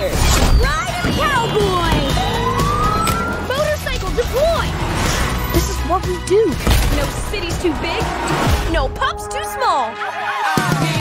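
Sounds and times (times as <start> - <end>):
trailer music: 0.0 - 11.0
vehicle sounds: 0.7 - 9.6
animated siren wailing: 1.5 - 3.7.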